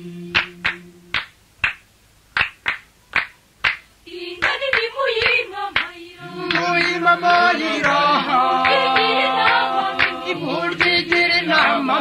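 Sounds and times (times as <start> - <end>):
background song: 0.0 - 1.4, 4.0 - 12.0
sharp handclaps: 0.4 - 7.1, 7.8 - 12.0.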